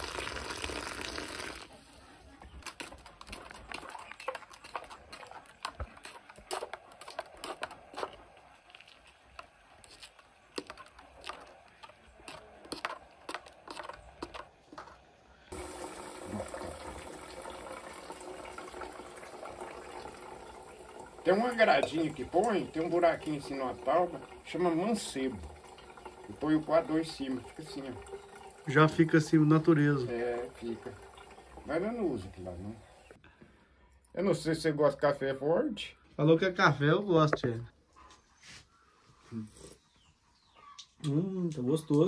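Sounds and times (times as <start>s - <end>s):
liquid pouring: 0.0s - 1.8s, 2.7s - 33.2s
water poured into metal pot: 0.0s - 1.8s, 15.5s - 33.2s.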